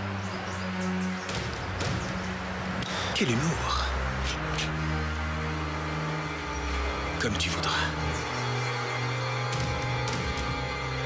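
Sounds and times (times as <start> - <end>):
dramatic underscore music: 0.0 - 11.0.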